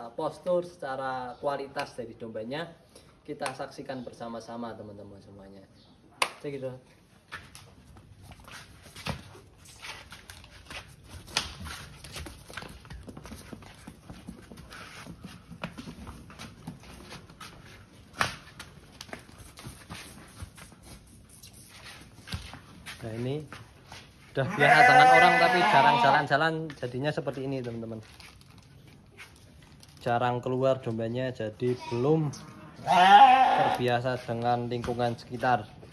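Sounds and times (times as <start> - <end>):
hooves on concrete: 7.1 - 29.8, 30.8 - 35.9
footsteps on concrete: 7.2 - 28.2, 32.8 - 35.9
sheep bleating: 24.4 - 26.3, 31.7 - 33.8.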